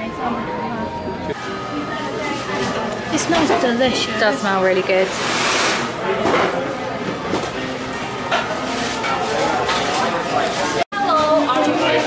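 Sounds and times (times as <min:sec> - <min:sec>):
background chatter: 0:00.0 - 0:12.0
music in a shop: 0:00.0 - 0:12.0.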